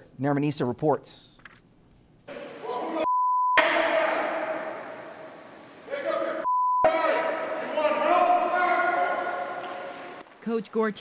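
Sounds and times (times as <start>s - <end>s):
censor bleep: 3.0s - 3.6s, 6.4s - 6.9s
man shouting: 5.9s - 9.5s.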